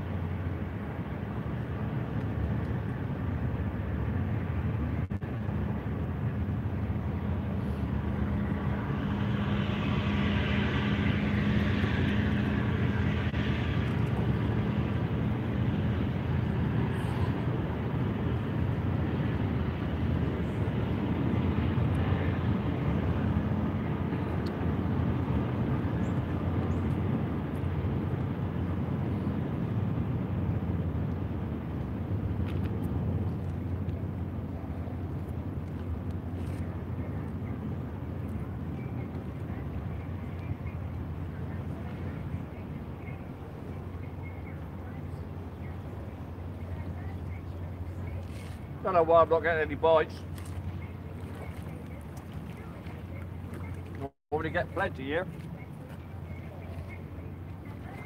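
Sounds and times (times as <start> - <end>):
low engine drone: 0.0 - 58.0.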